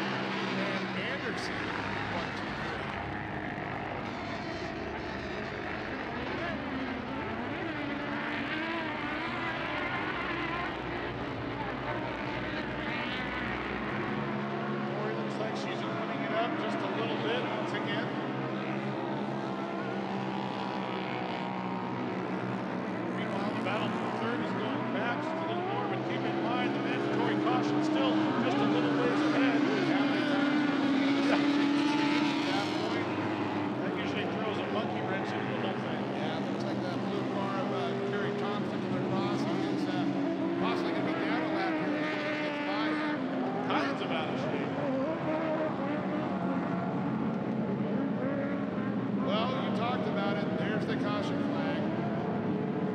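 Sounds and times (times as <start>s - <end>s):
racing engines revving: 0.0s - 52.9s.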